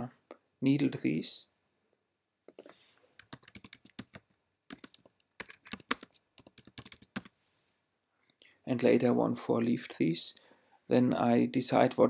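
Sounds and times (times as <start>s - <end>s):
typing on computer keyboard: 3.2s - 7.3s.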